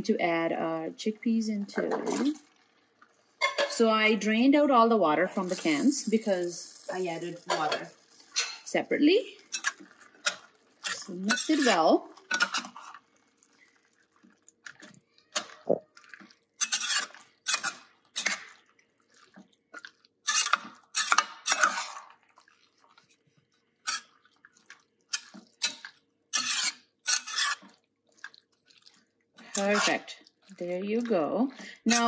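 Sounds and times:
spoon stirring thick sauce: 9.3s - 32.0s
spoon scraping pot: 9.4s - 13.1s, 14.7s - 18.6s, 19.7s - 22.1s, 23.8s - 24.1s, 25.1s - 32.0s.

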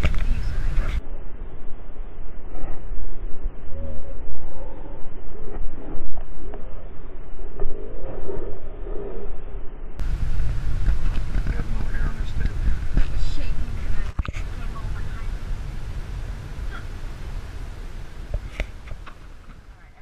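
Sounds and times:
car engine and road noise: 0.0s - 1.0s, 10.0s - 20.0s
indistinct voices: 10.0s - 20.0s.

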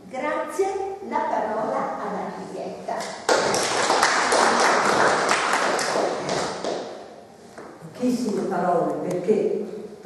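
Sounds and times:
audience applauding: 3.3s - 6.8s.

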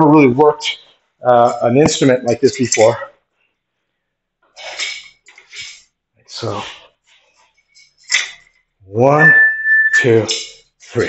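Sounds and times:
forceful exhalations: 4.5s - 7.0s.

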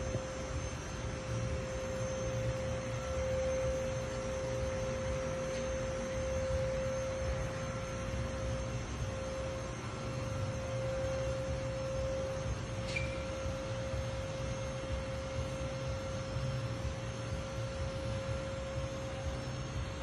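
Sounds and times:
hydraulic tilt pump whine: 0.0s - 20.0s.

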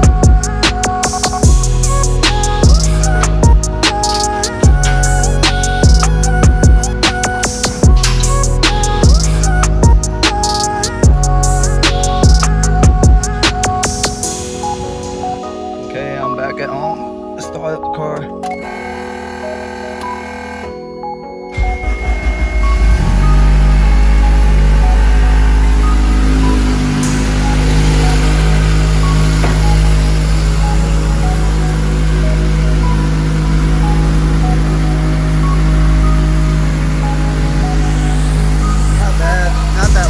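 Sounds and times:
car engine starting and idling: 0.0s - 15.5s, 18.4s - 20.8s, 21.5s - 40.0s
background music: 0.0s - 40.0s.

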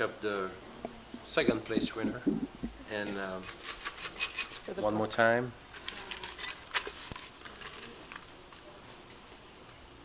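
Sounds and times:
paper slips rustling in a pot: 5.7s - 9.8s.

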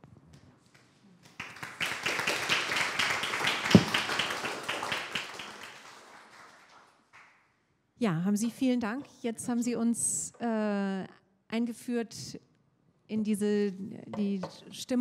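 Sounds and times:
audience applauding: 1.2s - 7.4s
loud knock: 3.7s - 4.1s.

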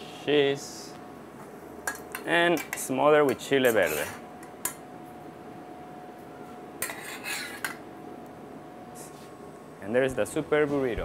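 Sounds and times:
faint steady hum: 0.0s - 11.0s
metal spoon scraping a pot: 3.6s - 4.2s, 6.8s - 7.8s.

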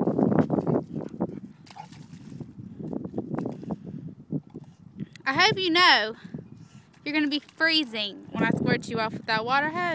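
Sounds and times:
footsteps in wet mud: 0.0s - 3.8s, 6.7s - 8.5s.

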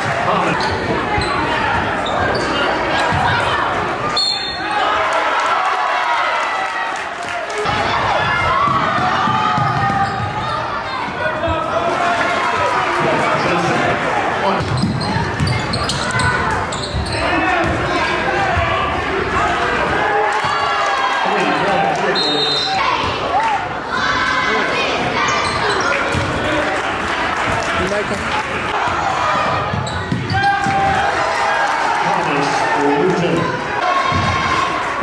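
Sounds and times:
people shouting and talking: 0.0s - 35.0s.

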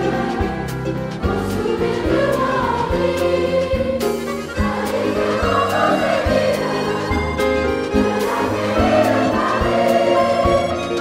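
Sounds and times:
children's choir singing: 0.0s - 11.0s
instrumental accompaniment: 0.0s - 11.0s.

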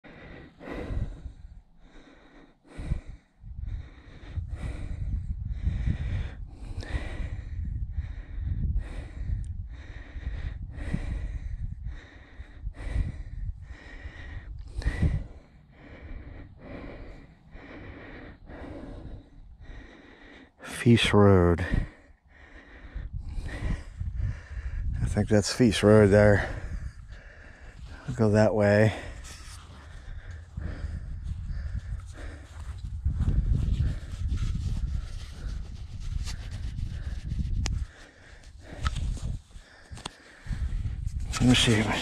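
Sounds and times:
person breathing hard: 0.0s - 42.0s
wind rumbling on microphone: 0.2s - 42.0s.

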